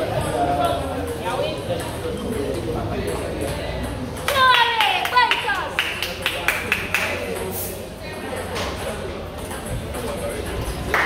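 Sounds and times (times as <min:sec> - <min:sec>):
voices chattering in hall: 0:00.0 - 0:11.0.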